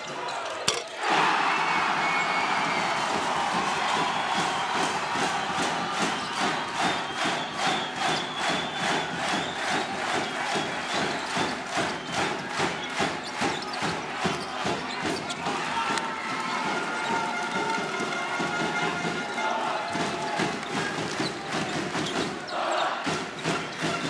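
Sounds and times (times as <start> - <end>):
crowd chanting rhythmically: 0.0 - 17.2, 18.6 - 24.0
crowd roaring: 0.0 - 24.0.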